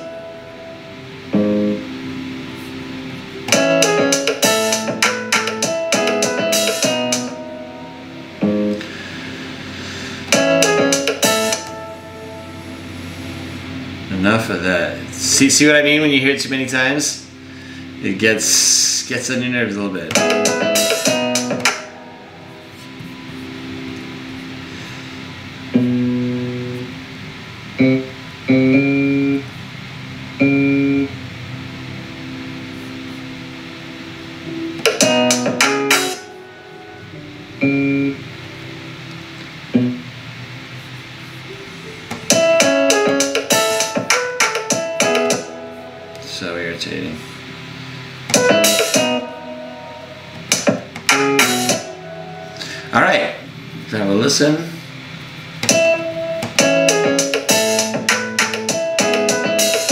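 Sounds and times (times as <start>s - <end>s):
sustained bass notes: 0.0s - 36.0s
piano: 0.0s - 59.9s.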